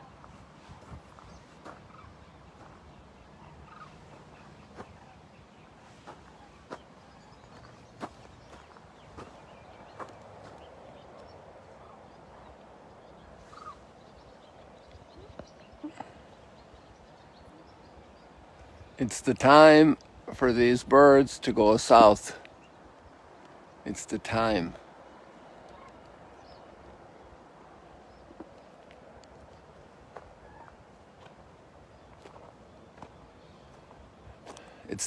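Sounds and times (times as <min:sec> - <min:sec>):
low outdoor background: 0:00.0 - 0:35.0
footsteps on gravel: 0:05.9 - 0:10.6, 0:32.1 - 0:34.7.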